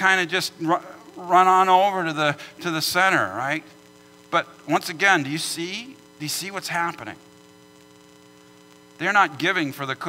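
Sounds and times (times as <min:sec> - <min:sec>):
person speaking: 0:00.0 - 0:07.2
electrical hum: 0:00.0 - 0:10.0.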